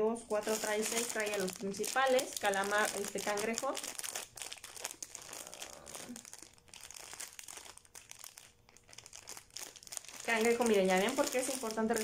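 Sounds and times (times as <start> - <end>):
plastic bag crinkling: 0.3 - 12.0.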